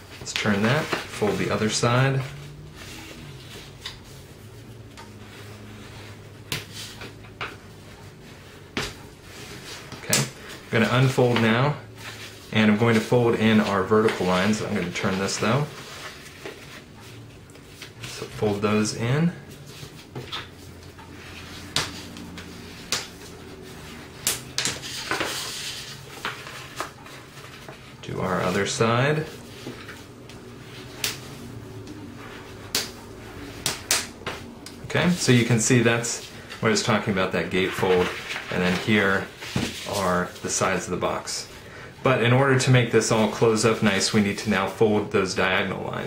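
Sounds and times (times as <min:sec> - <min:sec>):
paper rustling: 0:00.1 - 0:40.9
cardstock folding taps and crackles: 0:21.6 - 0:23.3, 0:32.6 - 0:33.0
stiff paper being folded: 0:37.6 - 0:40.4.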